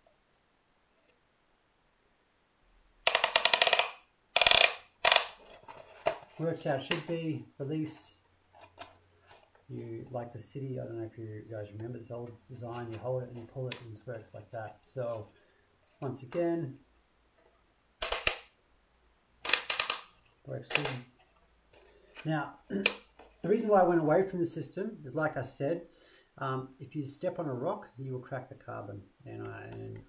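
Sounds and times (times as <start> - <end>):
ratchet buckle clicking rapidly: 3.1 - 5.4.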